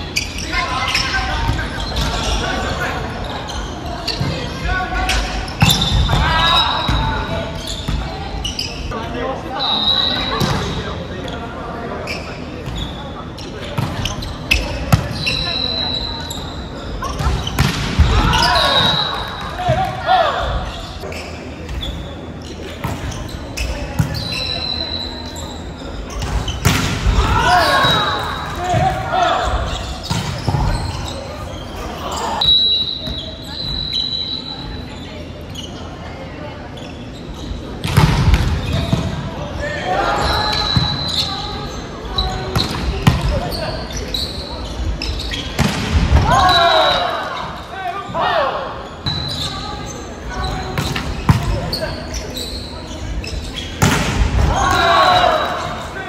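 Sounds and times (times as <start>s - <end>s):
players shouting: 17.1s - 20.7s, 27.0s - 29.8s, 46.1s - 48.8s, 54.2s - 56.0s
high squeaks: 48.9s - 53.8s
volleyball being hit: 53.8s - 54.8s.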